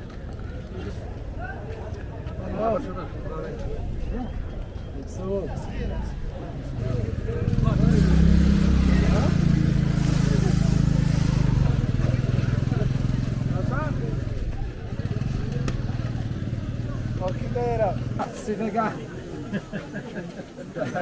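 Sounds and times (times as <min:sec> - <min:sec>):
market voices: 0:00.0 - 0:21.0
motor tricycle engine running: 0:06.8 - 0:18.3.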